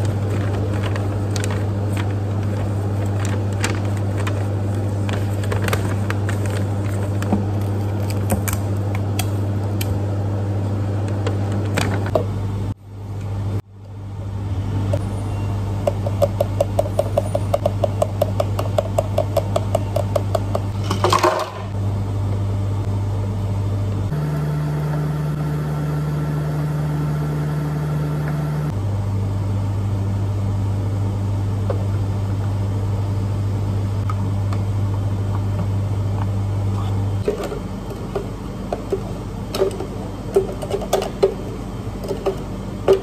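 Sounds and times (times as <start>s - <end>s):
another machine running: 0.0s - 10.1s, 13.9s - 29.1s
hum of cafe machines: 0.0s - 43.0s.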